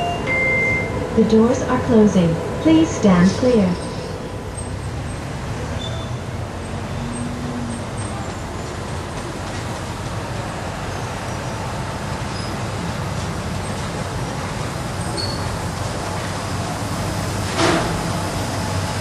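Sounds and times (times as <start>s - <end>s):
monorail train approaching: 0.0s - 19.0s
traffic noise: 0.0s - 19.0s.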